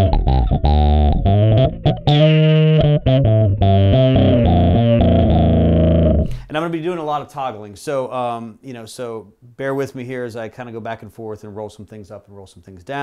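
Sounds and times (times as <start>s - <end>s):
distorted electric bass riff: 0.0s - 6.5s.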